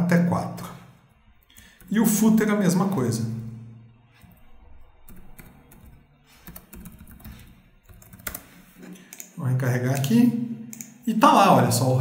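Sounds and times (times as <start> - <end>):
computer keyboard typing: 5.1 - 9.4.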